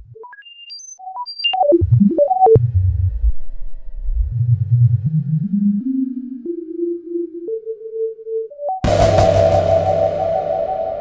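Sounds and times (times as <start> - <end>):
synthesizer tone stepping upward: 8.8 - 11.0.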